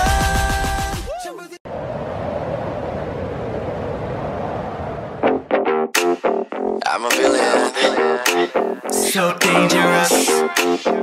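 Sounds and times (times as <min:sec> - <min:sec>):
steady rushing noise: 0:01.7 - 0:05.5.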